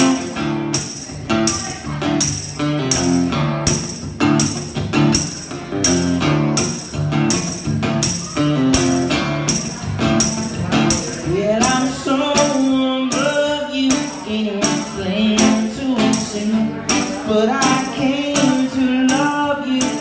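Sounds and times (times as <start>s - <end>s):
amplified acoustic guitar: 0.0s - 20.0s
percussive beat: 0.0s - 20.0s
man singing: 10.2s - 20.0s.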